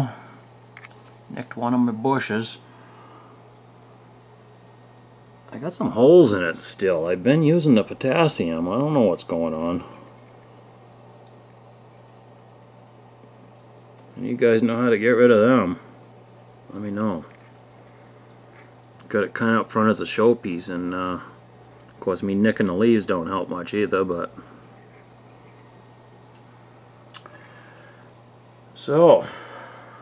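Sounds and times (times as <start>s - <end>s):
faint low hum: 0.0s - 30.0s
water trickling: 7.7s - 20.4s, 21.5s - 27.7s.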